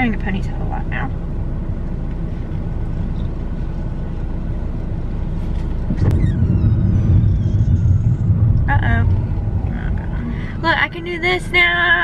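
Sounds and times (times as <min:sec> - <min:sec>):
car rumble inside cabin: 0:00.0 - 0:12.0.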